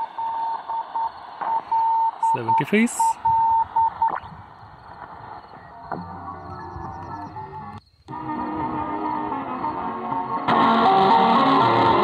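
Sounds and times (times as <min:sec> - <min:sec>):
weak steady radio tones: 0:00.0 - 0:07.8
radio static hiss: 0:00.0 - 0:08.3.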